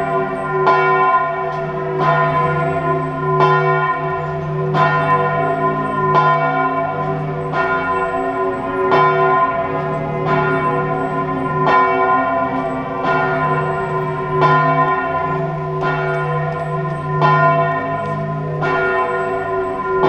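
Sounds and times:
church bell tolling: 0.0 - 20.0.

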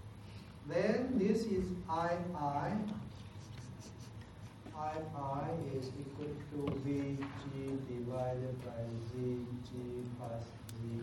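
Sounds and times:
man talking: 4.7 - 11.0.

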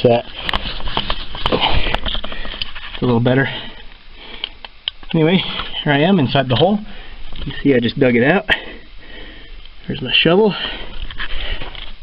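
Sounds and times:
hand rubbing camera lens: 0.3 - 3.2.

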